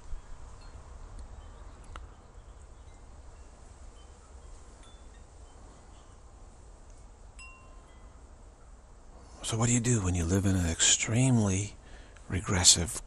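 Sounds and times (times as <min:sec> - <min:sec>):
faint chimes ringing: 0:00.2 - 0:06.4, 0:07.3 - 0:08.6.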